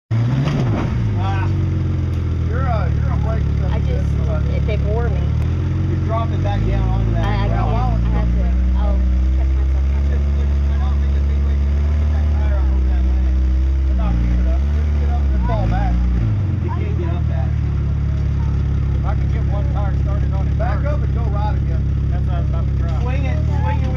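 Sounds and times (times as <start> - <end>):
engine running under load: 0.1 - 23.9
voices calling out: 1.0 - 23.9.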